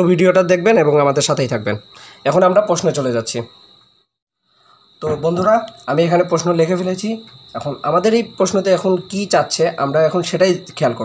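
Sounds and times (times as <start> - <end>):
man talking: 0.0 - 3.5, 5.0 - 11.0.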